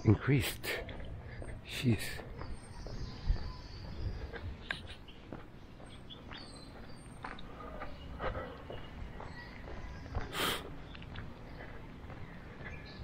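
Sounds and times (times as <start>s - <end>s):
birds chirping faintly: 0.0s - 13.0s
footsteps on concrete: 0.2s - 13.0s.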